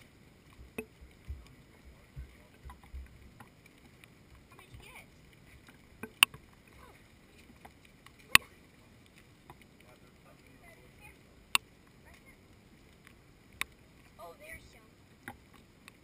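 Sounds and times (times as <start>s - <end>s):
soft low thuds: 0.6s - 3.5s.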